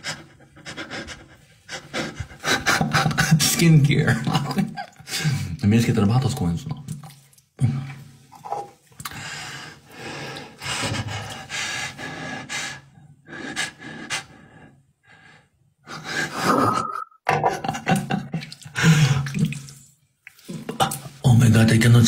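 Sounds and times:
person laughing breathlessly: 0.0 - 3.4, 15.8 - 16.8, 17.5 - 19.4.

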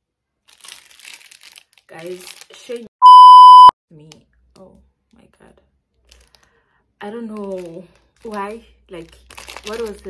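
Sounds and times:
plastic bag crinkling: 0.4 - 2.9, 7.3 - 10.0.

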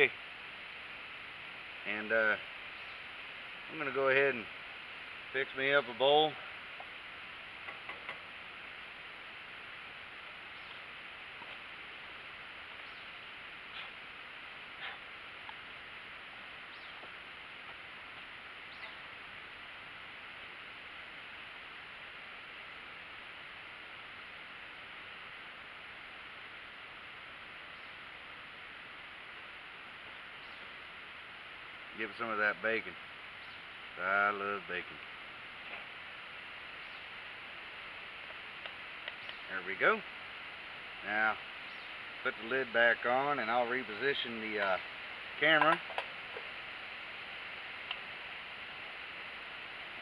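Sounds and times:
steady hiss: 0.0 - 50.0.

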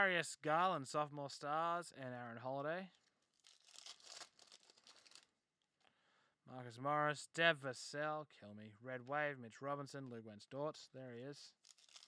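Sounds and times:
foil wrapper crinkling: 3.1 - 5.3, 11.6 - 12.0.

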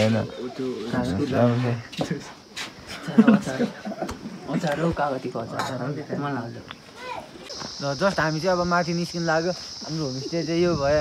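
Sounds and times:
high-pitched insect drone: 7.4 - 11.0.

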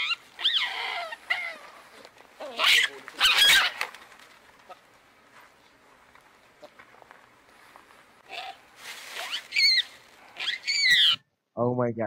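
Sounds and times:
baboons screaming: 0.0 - 3.9, 8.2 - 8.6, 9.2 - 11.2.

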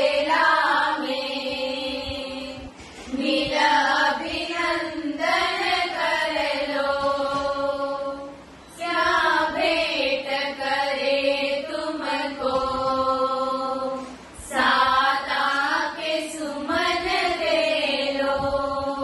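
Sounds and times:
women singing devotional song: 0.0 - 19.0.

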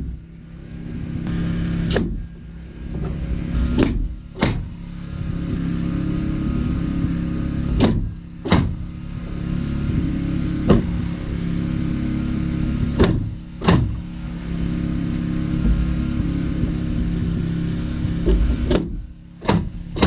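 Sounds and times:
mechanical drone: 0.0 - 20.0
nail gun shots: 1.9 - 2.2, 3.8 - 4.7, 7.8 - 8.8, 13.0 - 14.0, 18.3 - 20.0.

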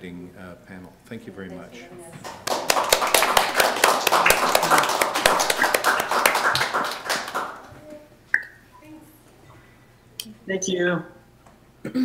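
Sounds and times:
people applauding: 2.2 - 7.7.

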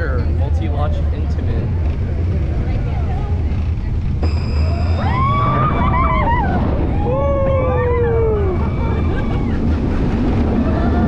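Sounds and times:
roller coaster rumbling on track: 0.0 - 11.0
wind rush: 0.0 - 11.0.

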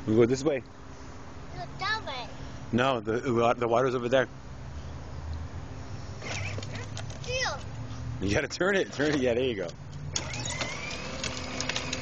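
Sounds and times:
electric toy motor whirring: 6.2 - 7.4, 10.1 - 12.0
plastic wheels rolling on concrete: 8.8 - 12.0.

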